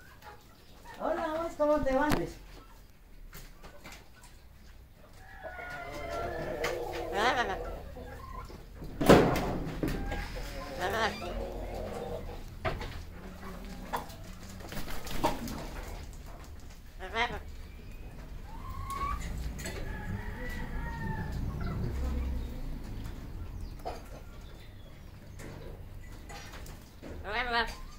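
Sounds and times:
parrot squawking: 10.2s - 12.1s.

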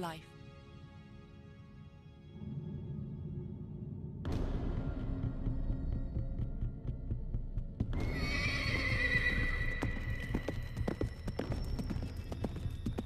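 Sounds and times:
hooves clip-clopping: 6.4s - 13.0s
horse whinnying: 8.0s - 10.4s.

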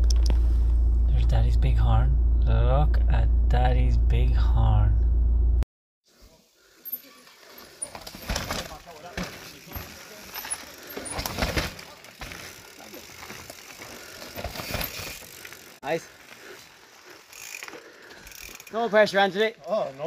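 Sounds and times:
steady low hum: 0.0s - 5.6s
bike tyres crunching and skidding: 6.5s - 20.0s
bike knocks and rattles: 7.6s - 15.7s.

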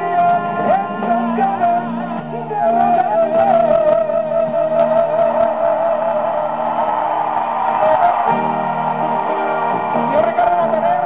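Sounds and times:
live band music: 0.0s - 11.0s
strummed guitar: 0.0s - 11.0s.

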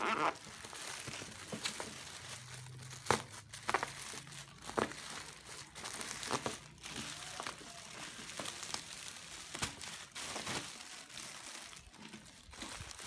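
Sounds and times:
plastic bag crinkling: 0.0s - 13.0s
sharp plastic crackles: 0.0s - 13.0s.

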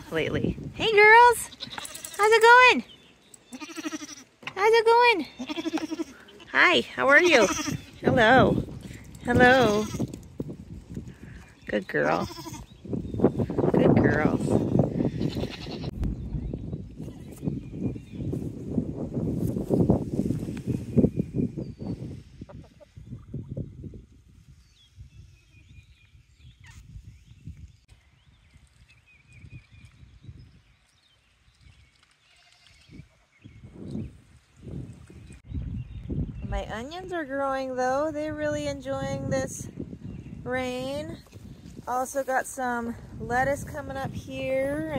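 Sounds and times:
goat bleating: 1.4s - 2.3s, 3.5s - 4.3s, 5.3s - 8.1s, 9.5s - 10.1s, 12.2s - 12.7s, 15.1s - 15.9s.

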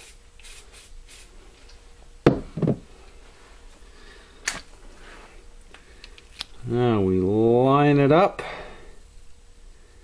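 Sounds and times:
dull knocks on workbench: 2.2s - 2.9s.

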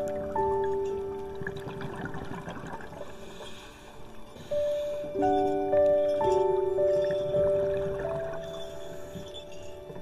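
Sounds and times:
bubbling water: 0.0s - 4.3s, 6.6s - 8.8s
soft piano music: 0.0s - 10.0s.

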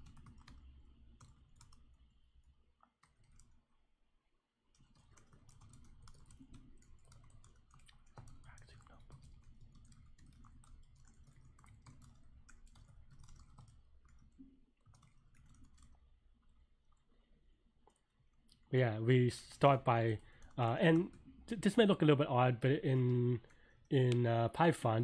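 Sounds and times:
rapid typing on keyboard: 0.0s - 2.1s, 3.0s - 3.7s, 4.7s - 17.1s, 19.4s - 21.9s.

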